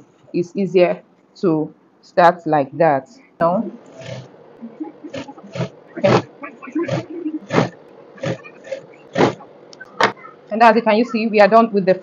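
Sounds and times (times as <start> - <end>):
faint motor hum: 0.0 - 12.0.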